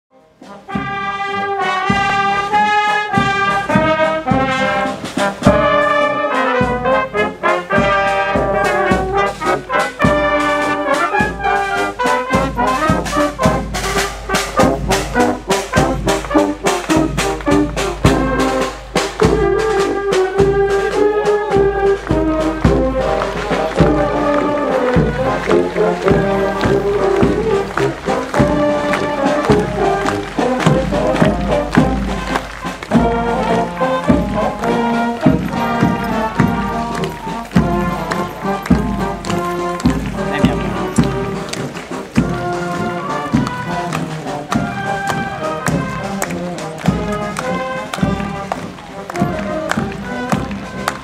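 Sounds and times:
brass band playing a march: 0.1s - 51.0s
drum steady beat: 0.4s - 51.0s.

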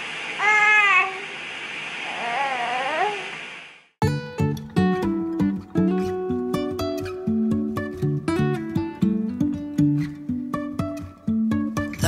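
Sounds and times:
steady hiss: 0.0s - 4.0s
baby vocalizing: 2.1s - 3.3s
acoustic guitar plucking: 4.0s - 12.0s.

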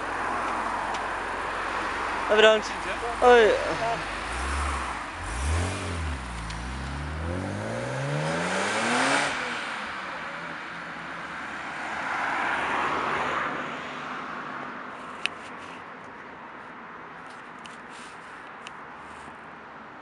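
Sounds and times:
car engine accelerating hard: 2.8s - 10.0s.

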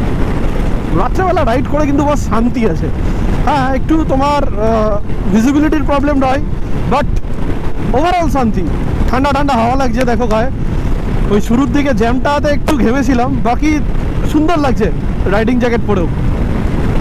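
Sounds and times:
motorcycle running: 0.0s - 17.0s
wind rumble on microphone: 0.0s - 17.0s
man talking: 0.9s - 7.2s, 7.9s - 10.6s, 11.3s - 16.2s.

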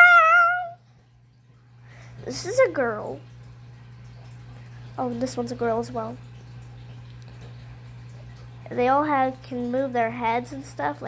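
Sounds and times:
child's meow-like squeal: 0.0s - 0.8s.

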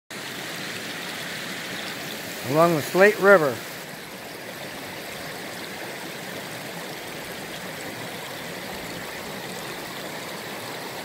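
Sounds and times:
flowing river water: 0.1s - 11.0s.

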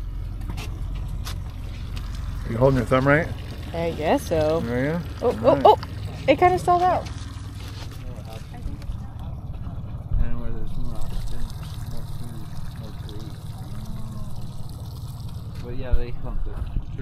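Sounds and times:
water against hull: 0.0s - 16.9s
boat engine rumbling: 0.0s - 17.0s
people talking: 2.5s - 7.1s, 8.0s - 14.4s, 15.6s - 17.0s.

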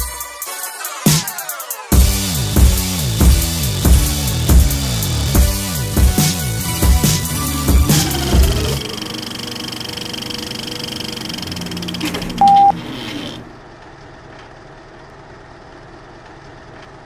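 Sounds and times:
short loud beep: 12.4s - 12.8s.

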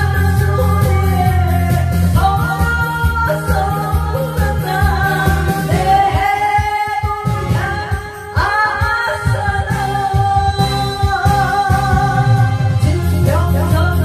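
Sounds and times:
backing music with steady beat: 0.0s - 14.0s
woman singing: 0.0s - 14.0s.

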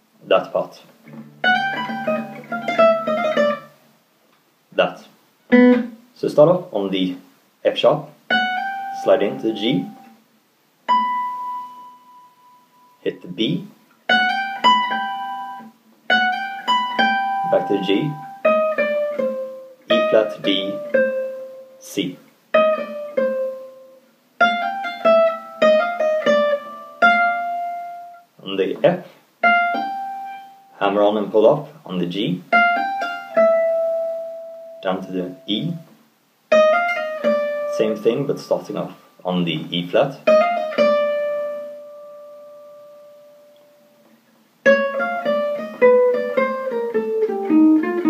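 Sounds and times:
acoustic guitar note ringing: 1.0s - 3.8s, 5.5s - 6.0s, 8.3s - 10.2s, 10.9s - 21.8s, 32.5s - 35.9s, 36.5s - 44.0s.

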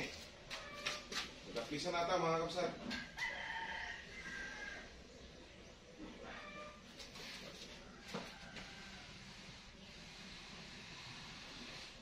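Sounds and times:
rooster crowing: 3.0s - 5.0s, 7.8s - 9.3s.

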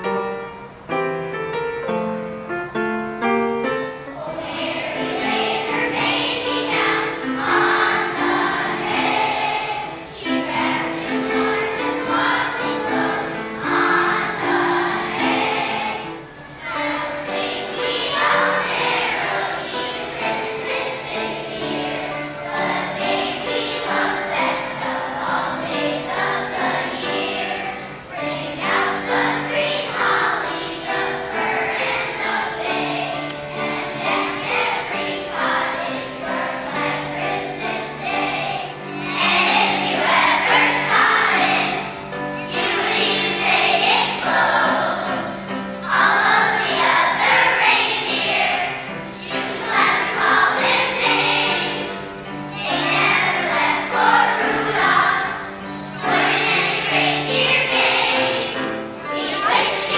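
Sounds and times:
children's choir singing: 0.0s - 59.9s.

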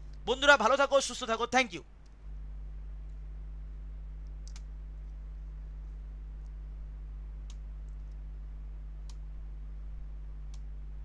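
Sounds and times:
low electrical hum: 0.0s - 11.0s
computer mouse clicking: 4.2s - 5.2s.

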